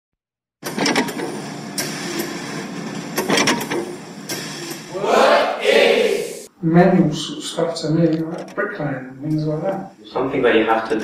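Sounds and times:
mechanical clatter: 0.6s - 4.9s.

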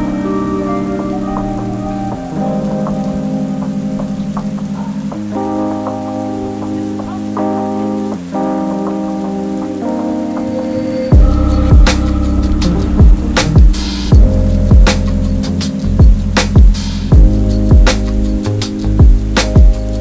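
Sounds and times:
lofi hip-hop chords: 0.0s - 20.0s
rain on window glass: 0.0s - 20.0s.

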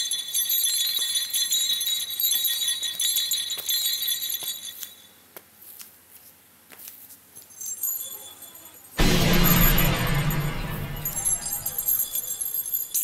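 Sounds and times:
shimmering bell-like chimes: 7.7s - 13.0s.

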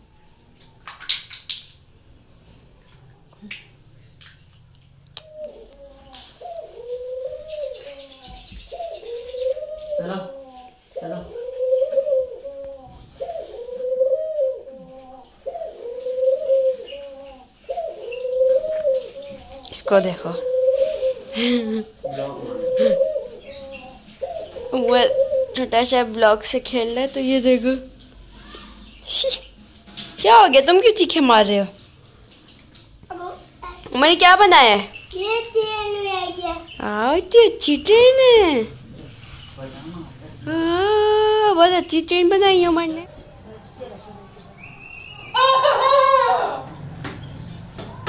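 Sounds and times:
dove cooing: 5.2s - 26.7s, 45.4s - 46.8s.

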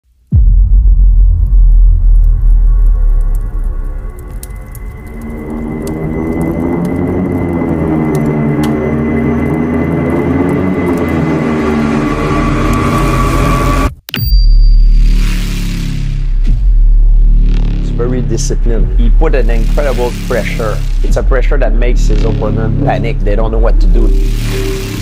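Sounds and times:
deep rumble: 0.1s - 13.9s, 14.6s - 25.0s
musical drone: 0.3s - 13.9s, 15.0s - 25.0s
steady high tone: 4.0s - 15.2s, 23.6s - 25.0s.

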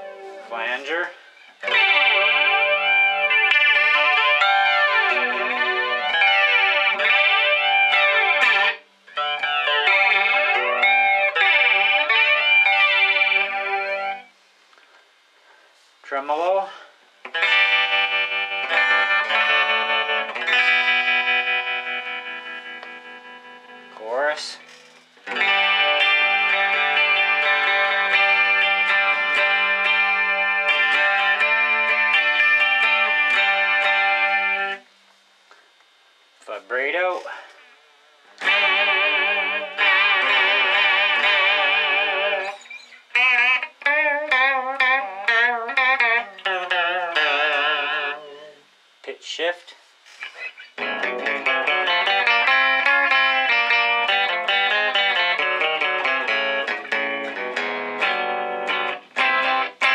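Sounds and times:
electric guitar with wavering pitch: 0.0s - 14.9s, 17.2s - 34.9s, 37.1s - 49.0s, 50.1s - 59.9s.

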